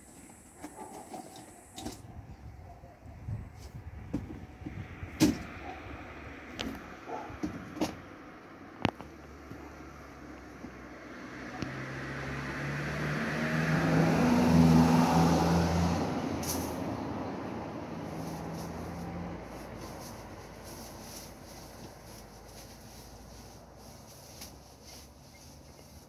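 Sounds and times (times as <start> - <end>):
vehicle passing by: 8.9 - 26.0.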